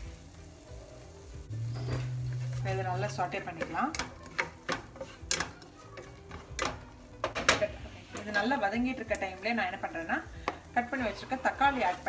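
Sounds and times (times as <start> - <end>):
onions frying in butter: 0.0 - 12.0
spatula knocking and scraping pan: 1.7 - 12.0.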